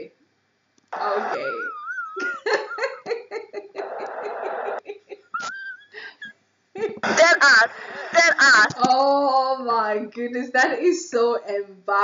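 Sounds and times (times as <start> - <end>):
woman laughing: 1.1 - 8.7.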